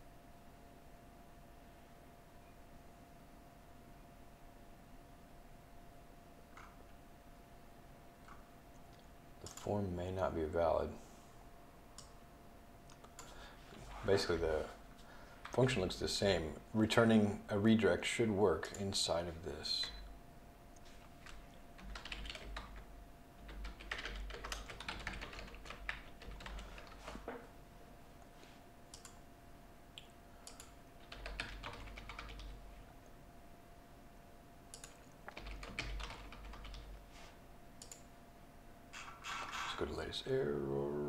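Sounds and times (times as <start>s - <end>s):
typing on computer keyboard: 21.2s - 27.3s, 30.4s - 32.6s, 34.7s - 37.0s.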